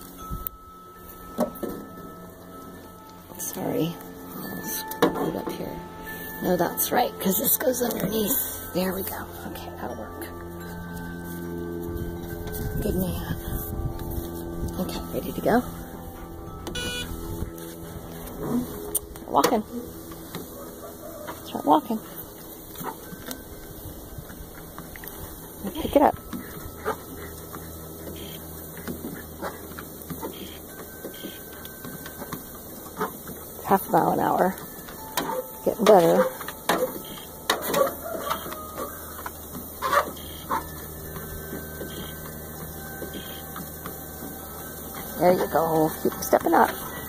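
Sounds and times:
treadmill motor humming: 13.7s - 47.0s
dog walking on treadmill belt: 24.2s - 47.0s.

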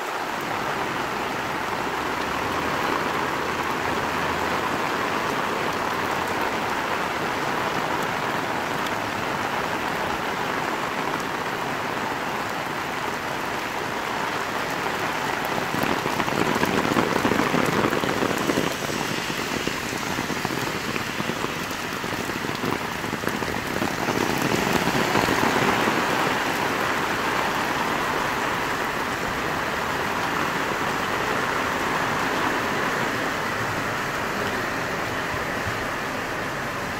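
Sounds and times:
heavy rain on pavement: 0.0s - 36.9s.

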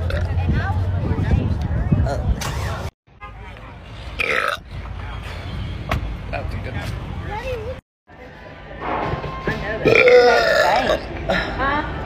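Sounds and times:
woman burping: 9.8s - 11.6s.

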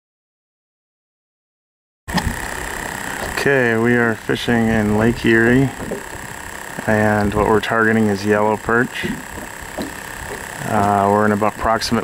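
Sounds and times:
faint steady hum: 2.1s - 12.0s
outdoor background noise on boat: 2.1s - 12.0s.

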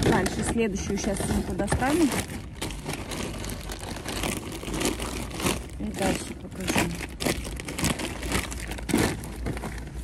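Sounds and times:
low outdoor rumble: 0.0s - 10.0s
shopping bag rustling: 0.0s - 10.0s.

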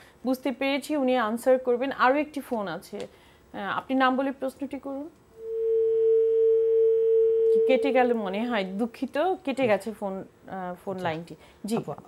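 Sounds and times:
steady telephone line tone: 5.3s - 8.3s.

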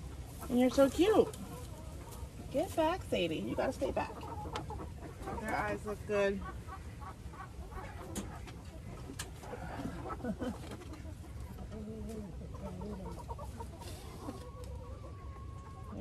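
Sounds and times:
hens clucking: 0.0s - 16.0s.

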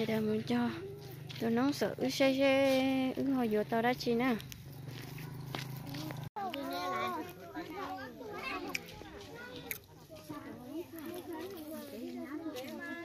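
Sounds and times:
adults and children talking: 0.0s - 13.0s.

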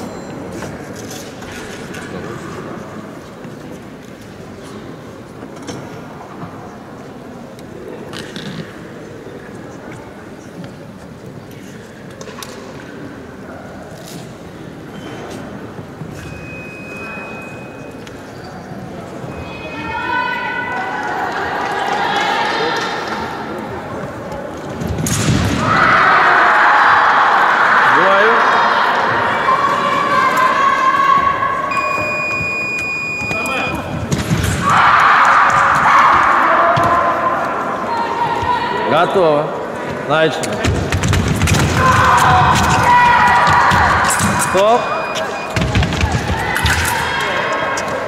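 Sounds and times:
voices and shouting in hall: 0.0s - 48.0s.

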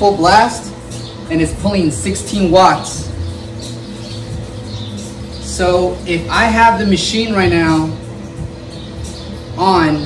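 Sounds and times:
bubble machine fan humming: 0.0s - 10.0s.

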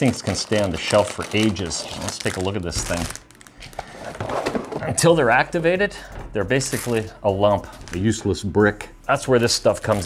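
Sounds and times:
cardboard scraping and rustling: 0.0s - 5.0s.

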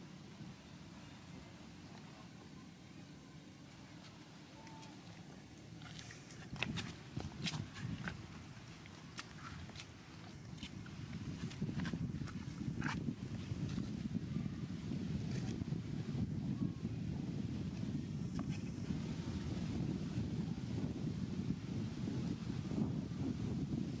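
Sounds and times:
wind buffeting microphone: 5.4s - 24.0s.

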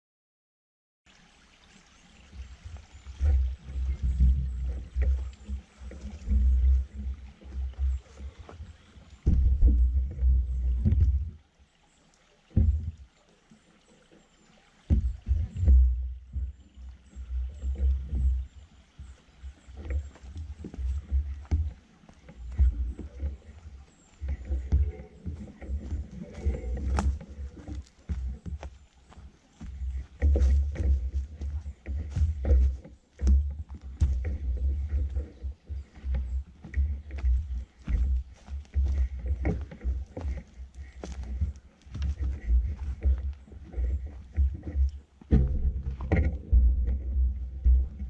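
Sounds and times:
wind buffeting microphone: 2.9s - 11.4s.

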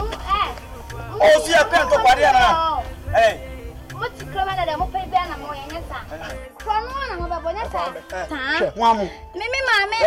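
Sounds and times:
voices shouting: 0.0s - 6.4s.

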